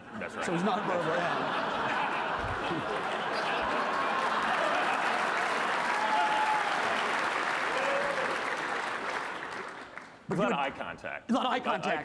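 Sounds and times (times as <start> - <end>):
audience applauding: 1.4 - 10.5.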